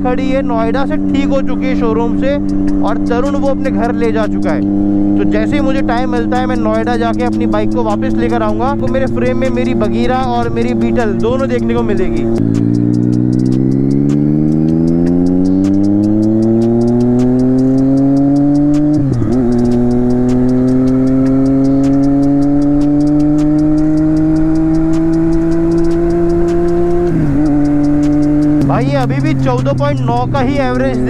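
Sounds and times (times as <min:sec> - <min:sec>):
motorcycle engine accelerating: 0:00.0 - 0:31.0.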